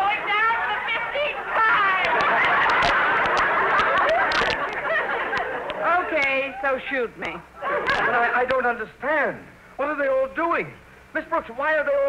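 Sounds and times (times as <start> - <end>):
studio audience laughing: 0.1 - 6.9, 7.6 - 8.4.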